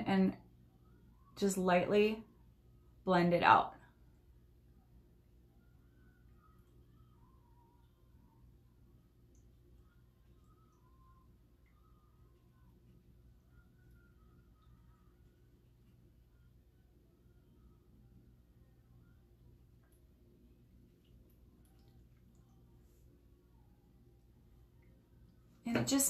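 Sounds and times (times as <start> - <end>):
faint low hum: 0.0 - 26.0
faint chirps: 4.6 - 25.6.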